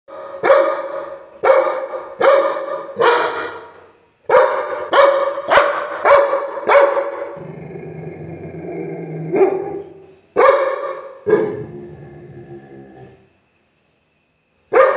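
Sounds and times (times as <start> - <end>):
dog barking: 0.1 - 7.4, 9.3 - 11.7
dog growling: 7.3 - 10.1, 11.3 - 13.3.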